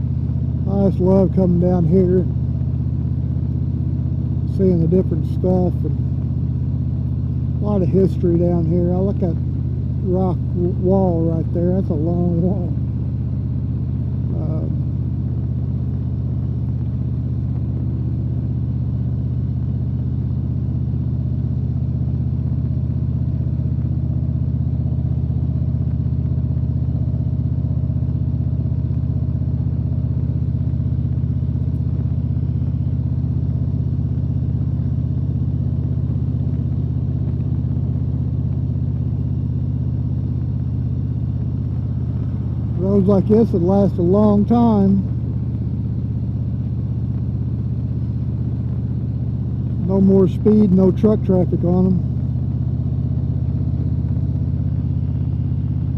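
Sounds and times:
motorcycle engine cruising: 0:00.0 - 0:55.9
road and wind noise: 0:00.0 - 0:55.9.

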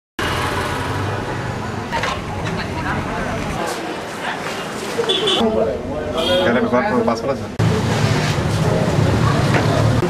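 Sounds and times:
road traffic noise: 0:00.2 - 0:10.0
people talking: 0:01.9 - 0:07.8.

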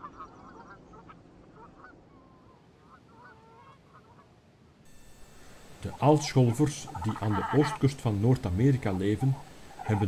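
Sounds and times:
geese honking: 0:05.0 - 0:10.0.

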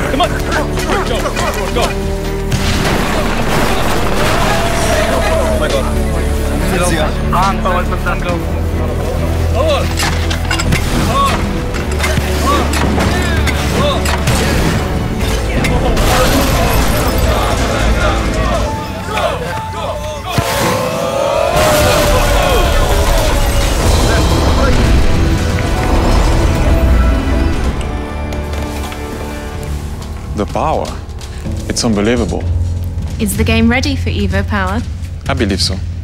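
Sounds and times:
sustained musical tones: 0:00.0 - 0:34.8
booms and impacts: 0:02.5 - 0:05.7
structure crashing rumble: 0:02.5 - 0:06.4.

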